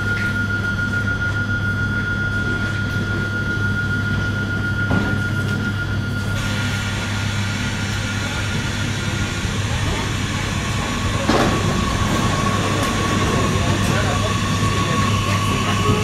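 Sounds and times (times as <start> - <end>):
railcar engine drone: 0.0 - 16.0
railcar high whine: 0.0 - 16.0.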